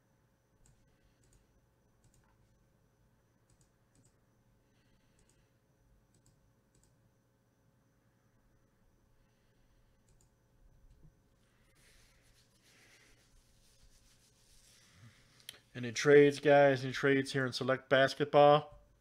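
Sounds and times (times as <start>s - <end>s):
low room hum: 0.0s - 19.0s
computer mouse clicks: 0.6s - 2.4s, 3.5s - 4.2s, 5.1s - 5.5s, 6.1s - 7.0s, 10.0s - 11.1s.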